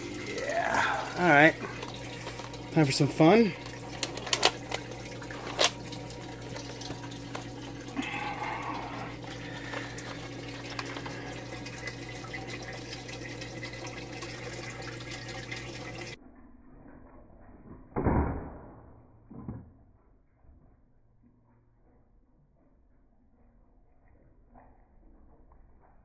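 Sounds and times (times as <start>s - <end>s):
low hum: 18.6s - 26.0s.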